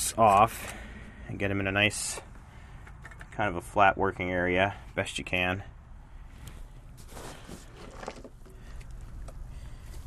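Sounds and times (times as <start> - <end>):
screw cap clicking and rustling: 2.8 - 3.4.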